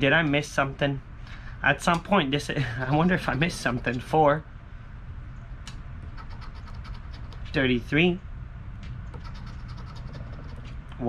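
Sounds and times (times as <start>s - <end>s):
coin scratching lottery ticket: 2.9s - 4.0s, 6.0s - 7.6s, 9.2s - 10.7s.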